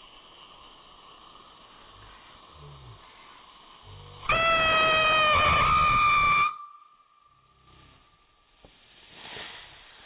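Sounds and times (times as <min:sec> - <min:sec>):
firework squealing whistle: 0:04.3 - 0:07.2.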